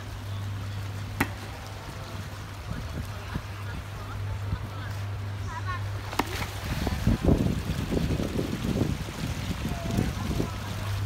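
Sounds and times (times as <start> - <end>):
water splashing and lapping: 0.0 - 11.0
wind rumble on microphone: 0.0 - 11.0.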